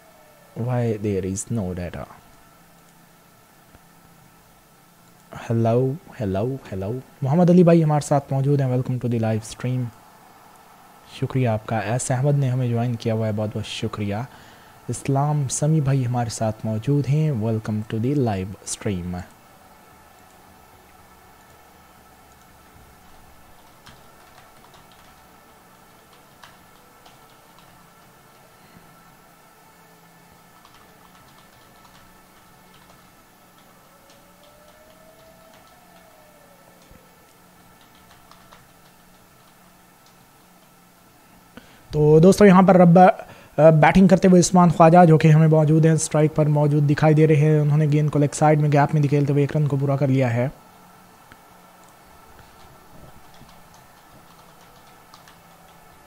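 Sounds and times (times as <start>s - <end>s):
faint rising and falling tone: 0.0s - 43.0s
low electrical hum: 0.0s - 56.0s
faint irregular clicking: 30.5s - 40.8s, 51.3s - 56.0s.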